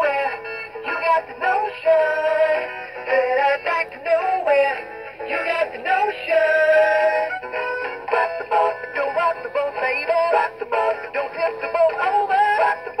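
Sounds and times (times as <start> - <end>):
processed voice singing: 0.0 - 7.3, 8.1 - 13.0
backing track: 0.0 - 13.0.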